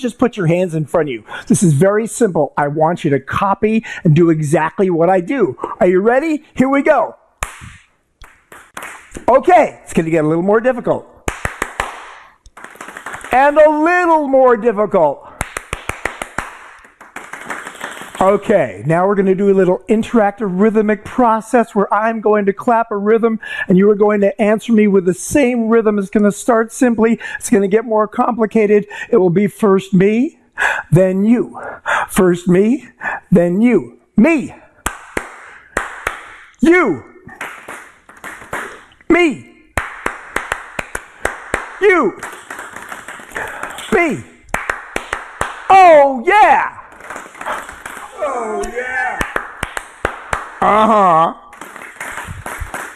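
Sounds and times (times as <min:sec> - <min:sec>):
hand claps: 0:07.4 - 0:09.6, 0:11.2 - 0:13.9, 0:15.4 - 0:18.5, 0:34.8 - 0:36.6, 0:37.3 - 0:39.0, 0:39.7 - 0:52.9.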